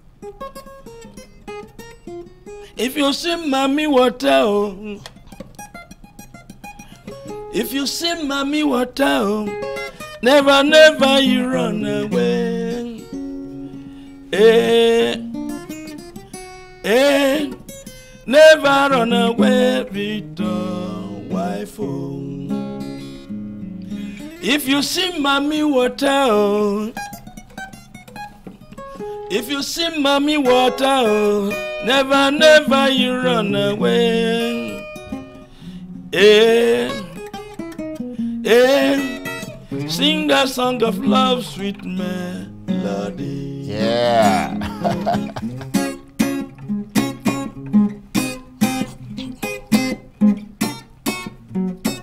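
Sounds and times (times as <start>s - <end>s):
acoustic guitar picked notes: 0.0s - 52.0s
person singing: 10.2s - 13.1s, 14.3s - 15.3s, 18.3s - 22.7s, 29.3s - 34.8s, 39.8s - 45.9s.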